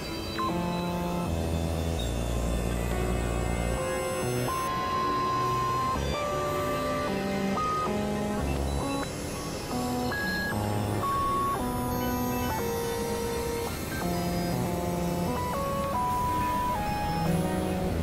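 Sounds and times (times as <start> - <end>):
noisy low drone: 0.0 - 18.0.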